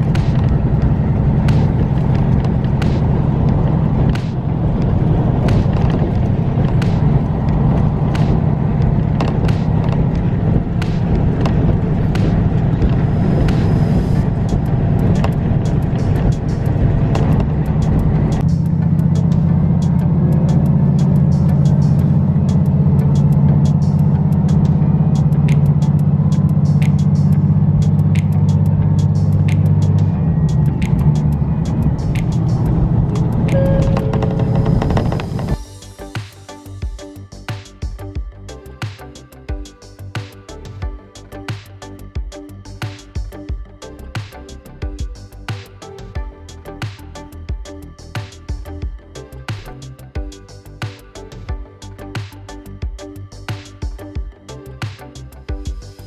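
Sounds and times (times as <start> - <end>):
wheels clicking on track: 0.0 - 35.6
rail noise: 0.0 - 36.0
diesel railcar engine drone: 0.0 - 56.0.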